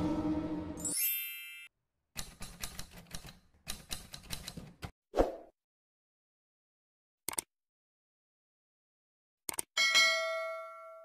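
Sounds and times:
bright chime: 0.8s - 1.7s
typewriter key clicks: 2.2s - 4.9s.

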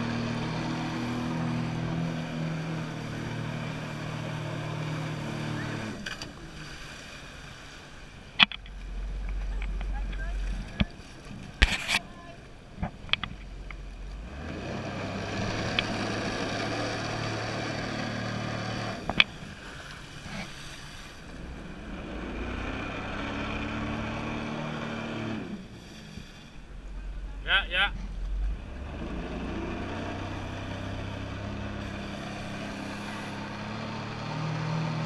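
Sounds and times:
jet ski engine revving: 0.0s - 12.2s, 12.9s - 35.0s.

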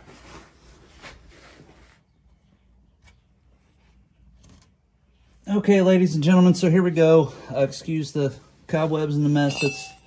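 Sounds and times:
faint rustling and shuffling: 0.0s - 10.0s.

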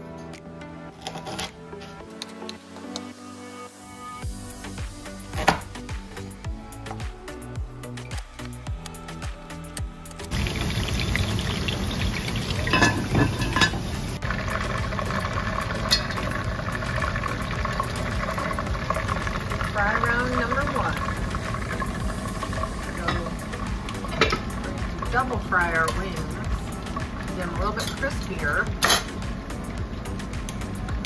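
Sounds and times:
sauce sizzling in saucepan: 10.3s - 28.6s.

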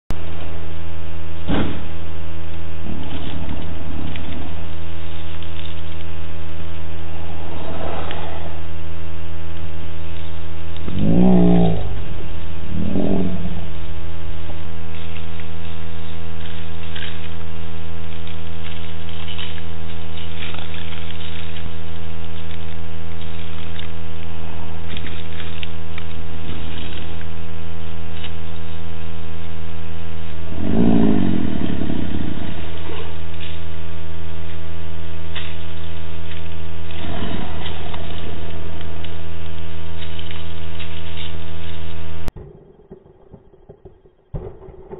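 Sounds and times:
electrical hum: 0.1s - 44.9s
small dog growling: 10.8s - 14.0s, 30.5s - 33.6s.

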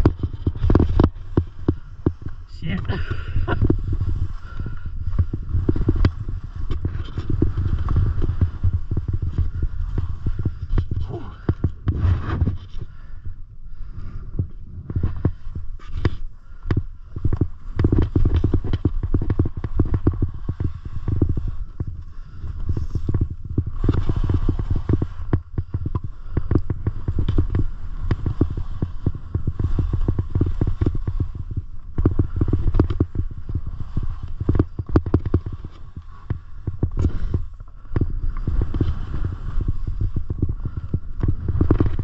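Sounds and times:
skis scraping clatter: 0.0s - 12.9s, 17.1s - 42.0s
skis thumping over snow bumps: 0.0s - 13.1s, 14.8s - 42.0s
steady low rumble: 0.0s - 42.0s.

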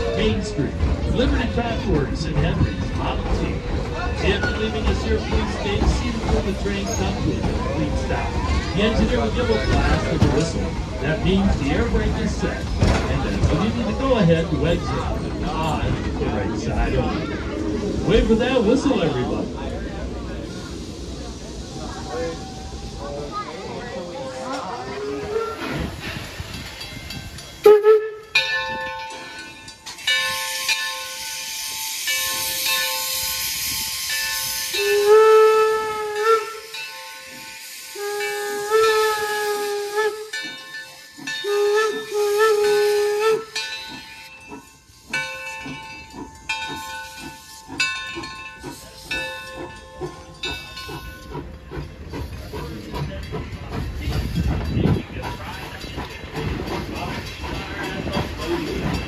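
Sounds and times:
locomotive rumbling: 0.0s - 59.0s
steam hissing: 2.8s - 28.0s, 28.6s - 59.0s
steam locomotive chime whistle: 27.5s - 51.4s.

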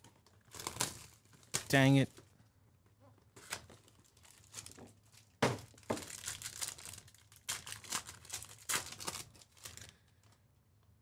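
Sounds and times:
foil pack crinkling and tearing: 0.2s - 2.0s, 3.3s - 10.4s.

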